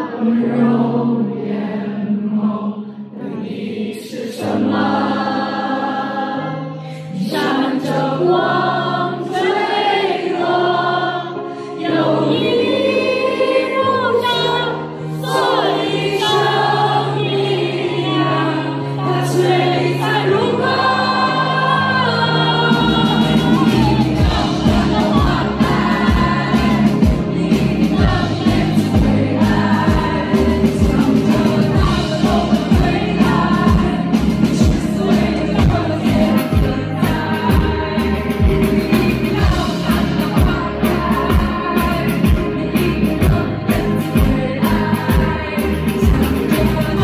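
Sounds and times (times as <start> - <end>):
held keyboard chords: 4.5 - 47.0
person singing: 10.4 - 47.0
low bass notes: 22.7 - 47.0.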